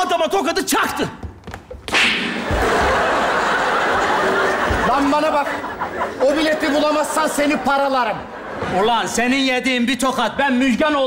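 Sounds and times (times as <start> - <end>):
sharp slap: 1.8 - 2.6
studio audience laughing: 2.3 - 9.2.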